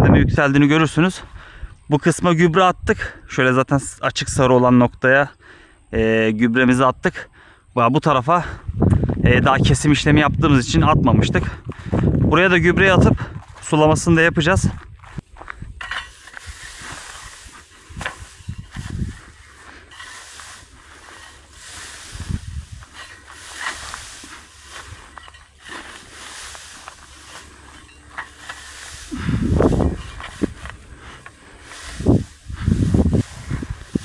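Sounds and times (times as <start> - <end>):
dry grass rustling and crackling: 12.8 - 34.0
low rumbling bursts: 16.4 - 34.0.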